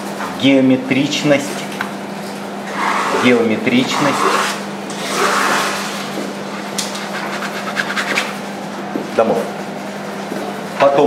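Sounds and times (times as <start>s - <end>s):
palette knife scraping canvas: 2.7s - 6.0s.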